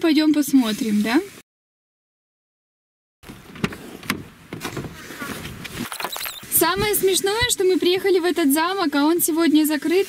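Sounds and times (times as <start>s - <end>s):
camera clicks and rustling: 5.6s - 6.5s.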